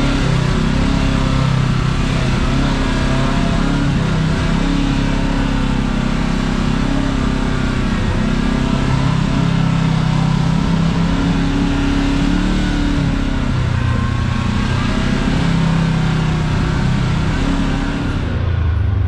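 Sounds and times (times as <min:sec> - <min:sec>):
utility vehicle engine running: 0:00.0 - 0:19.0.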